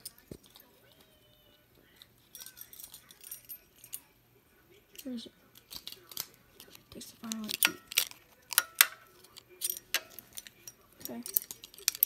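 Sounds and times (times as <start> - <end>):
small objects clinking: 0.0 - 0.8, 1.8 - 4.1, 4.9 - 12.0.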